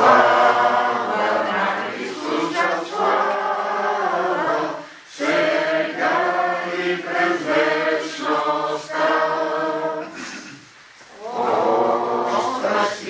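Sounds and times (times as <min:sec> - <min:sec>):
group singing a slow hymn: 0:00.0 - 0:13.0.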